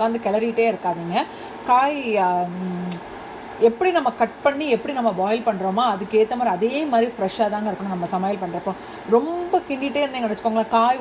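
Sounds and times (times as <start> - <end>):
woman talking: 0.0 - 3.0, 3.6 - 11.0.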